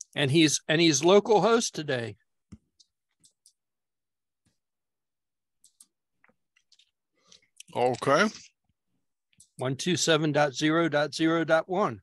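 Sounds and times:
man speaking over video call: 0.0 - 2.4, 7.6 - 8.6, 9.2 - 12.0.

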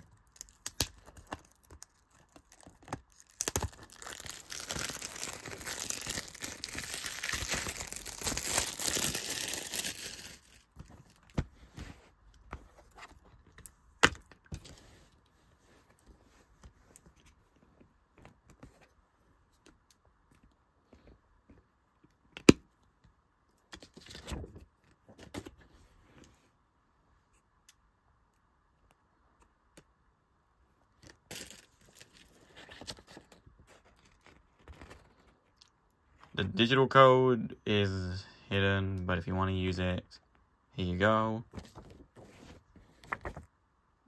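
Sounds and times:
shrink-wrap crinkling and tearing: 0.0 - 11.3, 31.0 - 33.4.

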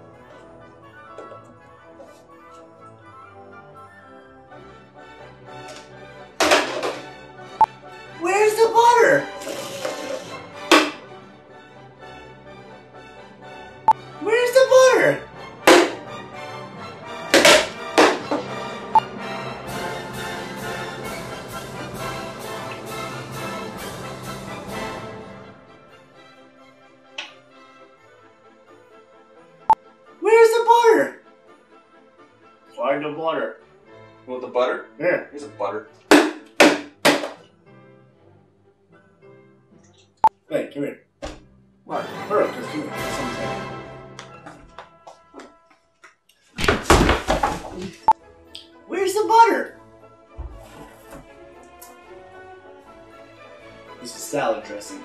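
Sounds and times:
background music: 0.0 - 55.0
loud thunk: 6.4 - 7.1, 15.7 - 16.0, 17.4 - 18.4, 41.2 - 41.5
man talking: 54.0 - 55.0.

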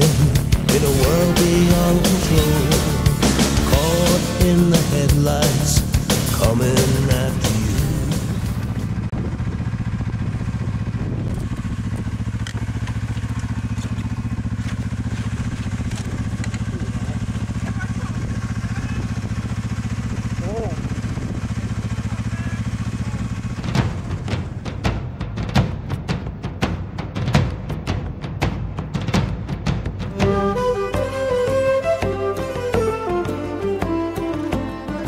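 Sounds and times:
snowmobile engine idling: 0.0 - 24.9.

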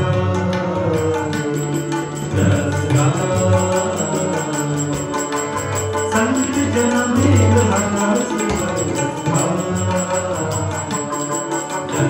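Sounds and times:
harmonium chords: 0.0 - 12.0
tabla strokes: 0.0 - 12.0.

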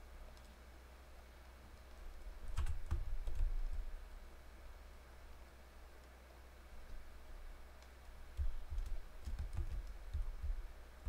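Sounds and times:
keyboard keys clicking: 2.5 - 3.5, 7.8 - 10.6.

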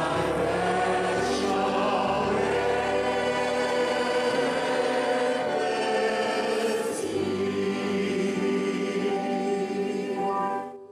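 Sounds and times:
man and woman singing hymn: 0.0 - 10.2.

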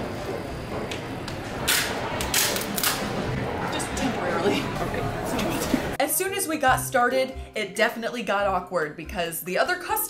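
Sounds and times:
store background noise: 0.0 - 7.2.

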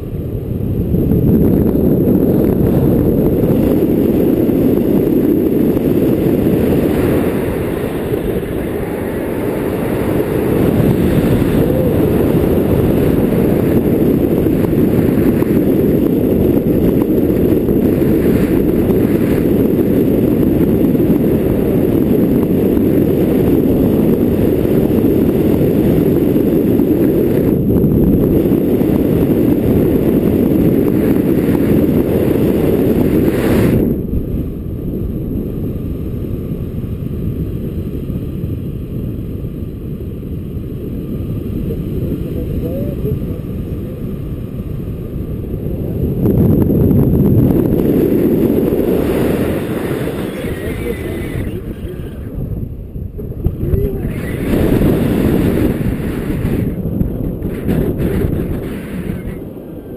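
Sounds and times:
wind buffeting microphone: 0.0 - 59.9.

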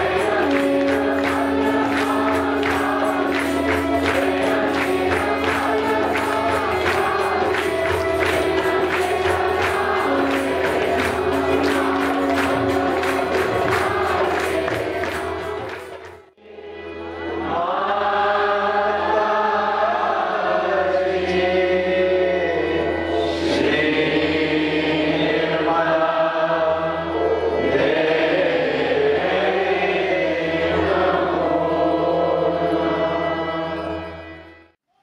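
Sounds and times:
group singing a chant: 0.0 - 16.8, 17.4 - 34.1.

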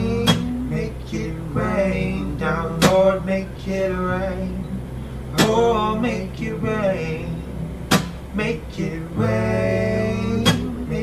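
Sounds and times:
man singing: 0.0 - 7.6, 8.3 - 11.0
acoustic guitar strumming: 0.0 - 11.0.

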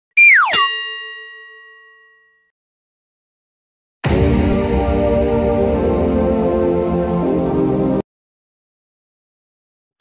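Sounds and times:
bell-like chime ringing: 0.4 - 2.5.

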